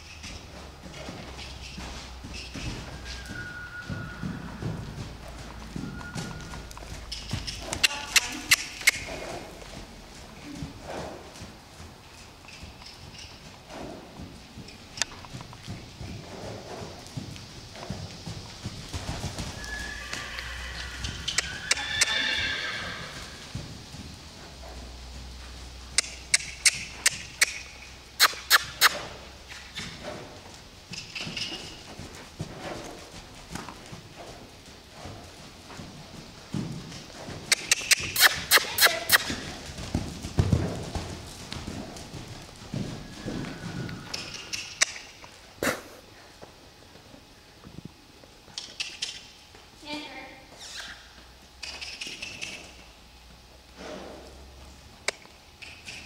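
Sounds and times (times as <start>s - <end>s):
horse hoofbeats on sand: 0.0s - 22.2s, 22.8s - 45.7s
horse neighing: 2.8s - 6.7s, 19.4s - 23.5s, 37.5s - 39.5s, 42.9s - 44.6s.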